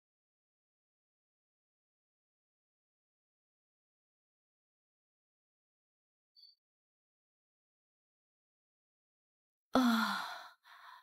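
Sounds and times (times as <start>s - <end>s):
soft breath: 9.8s - 11.0s
woman sighing: 9.8s - 11.0s.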